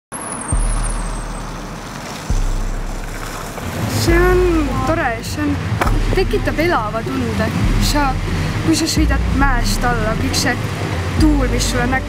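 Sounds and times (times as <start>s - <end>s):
skateboard wheels rolling on pavement: 0.2s - 6.4s
deep thumps: 0.5s - 12.0s.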